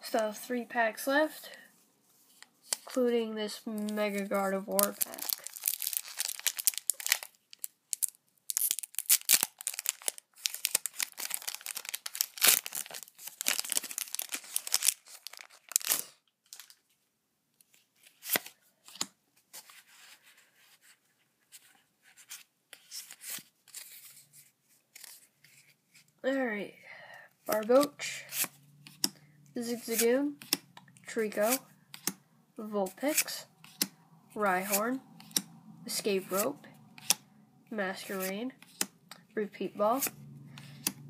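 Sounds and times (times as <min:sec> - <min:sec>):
foil wrapper tearing and crinkling: 0:04.7 - 0:16.8.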